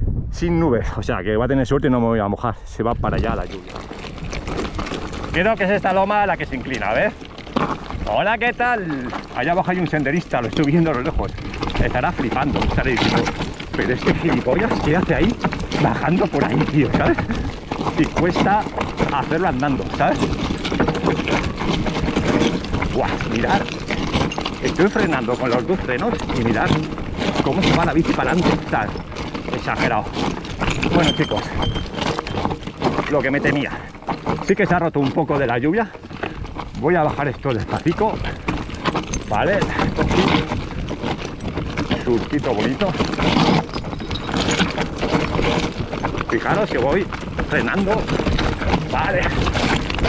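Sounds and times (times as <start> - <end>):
bike rattling: 3.0 - 50.0
bike tyres crunching over stones: 3.0 - 50.0.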